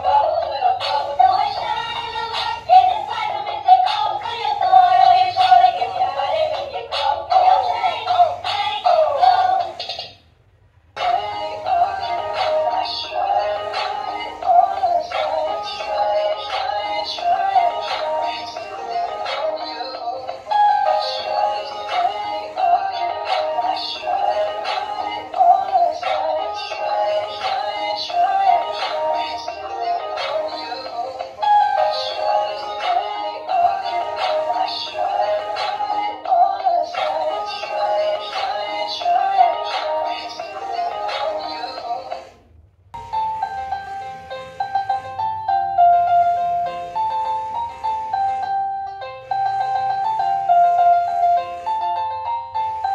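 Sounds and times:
toy playing song with electronic vocals: 0:00.0 - 0:10.2, 0:11.0 - 0:52.9.

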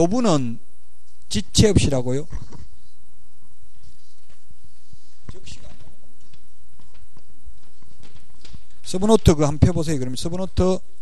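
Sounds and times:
steady low hum: 0:00.0 - 0:11.0
microphone handling clicks: 0:01.0 - 0:02.8
man's voice: 0:01.3 - 0:02.3, 0:08.8 - 0:10.8.

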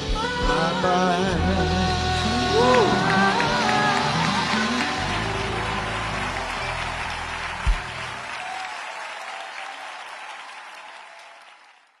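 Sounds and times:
audience applauding: 0:02.2 - 0:12.0.

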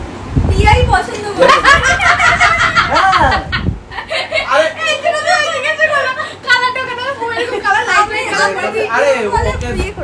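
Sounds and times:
people chatting: 0:00.5 - 0:10.0.

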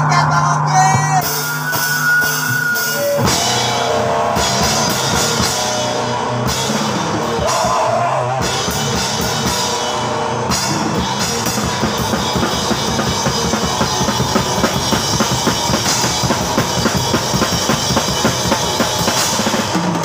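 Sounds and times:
ringing guitar tones: 0:00.0 - 0:07.6
rock band playing heavy music: 0:00.0 - 0:20.0.

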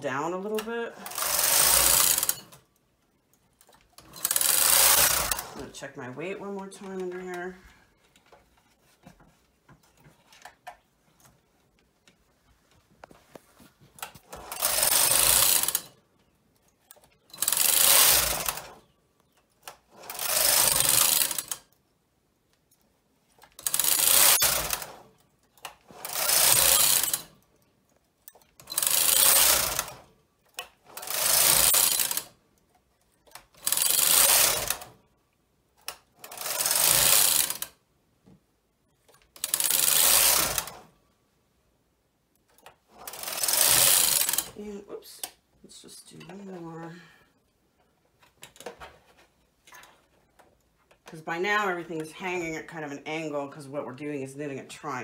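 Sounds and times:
knitting machine carriage clattering: 0:00.3 - 0:02.7, 0:03.4 - 0:12.3, 0:13.9 - 0:21.8, 0:23.3 - 0:32.4, 0:33.0 - 0:35.0, 0:35.8 - 0:37.8, 0:39.0 - 0:40.9, 0:42.4 - 0:45.4.

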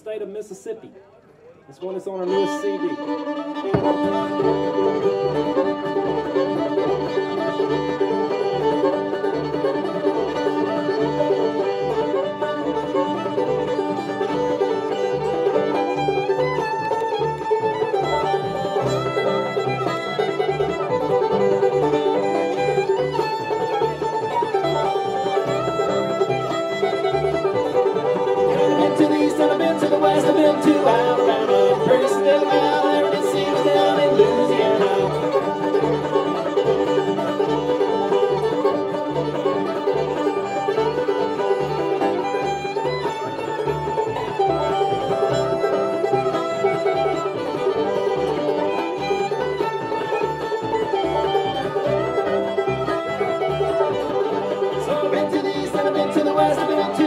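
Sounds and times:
banjo: 0:00.0 - 0:57.0
fiddle melody: 0:00.0 - 0:57.0
acoustic guitar: 0:03.6 - 0:57.0
upright bass: 0:03.6 - 0:57.0.

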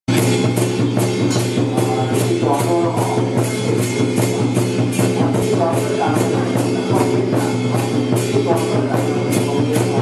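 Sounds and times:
drum-led percussion music: 0:00.1 - 0:10.0.

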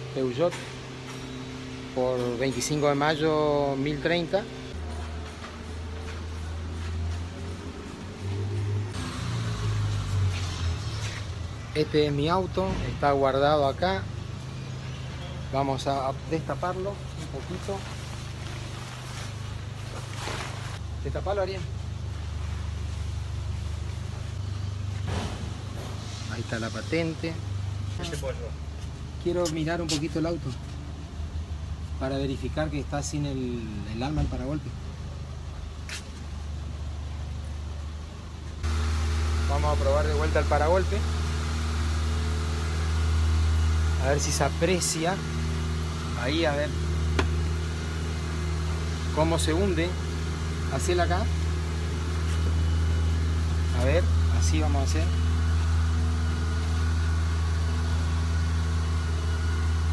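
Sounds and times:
steady low hum: 0:00.0 - 0:59.9
fabric cover rustling and swishing: 0:17.7 - 0:20.8.

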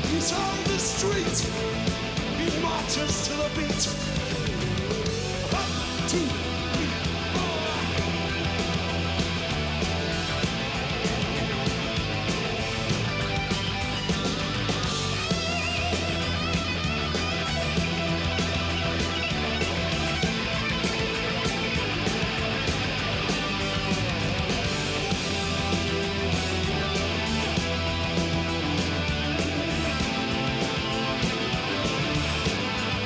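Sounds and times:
bass guitar: 0:00.0 - 0:33.0
electric guitar lines: 0:00.0 - 0:33.0
steady drum beat: 0:00.0 - 0:33.0.

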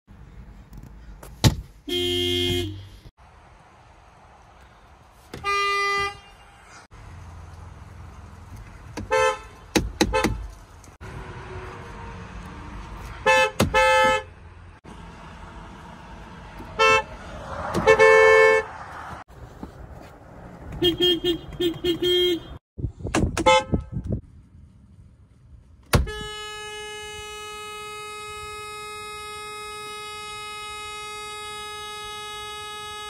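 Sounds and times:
car horn blasts: 0:01.8 - 0:03.1, 0:05.4 - 0:06.7, 0:09.0 - 0:10.4, 0:13.2 - 0:14.4, 0:16.8 - 0:17.1, 0:17.8 - 0:18.7, 0:20.8 - 0:22.6, 0:23.4 - 0:24.0, 0:25.9 - 0:33.0.

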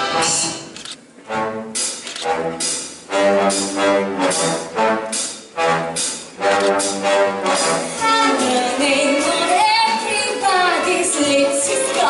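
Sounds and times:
orchestral punched chords: 0:00.0 - 0:08.1.

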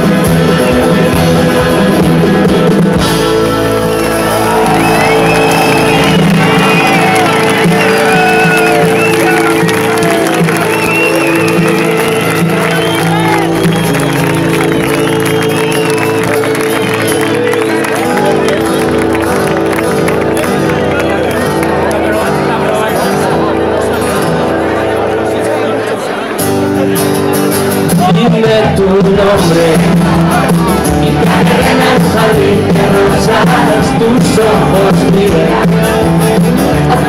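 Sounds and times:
guitars holding sustained chords: 0:00.0 - 0:37.0
audience cheering and shouting: 0:03.3 - 0:22.6, 0:29.3 - 0:37.0.

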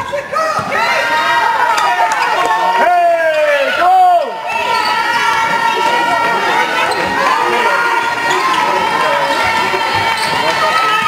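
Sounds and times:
voices and shouts: 0:00.0 - 0:11.0.

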